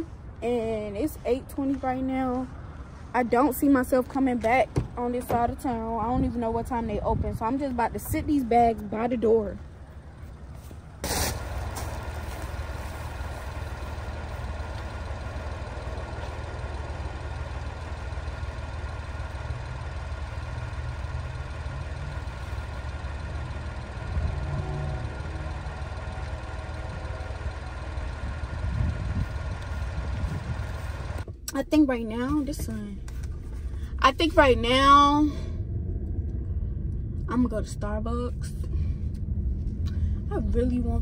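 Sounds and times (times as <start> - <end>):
vehicle engine idling: 0.0 - 41.0.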